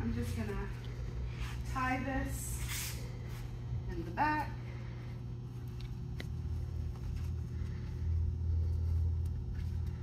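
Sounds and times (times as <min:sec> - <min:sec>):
hum: 0:00.0 - 0:10.0.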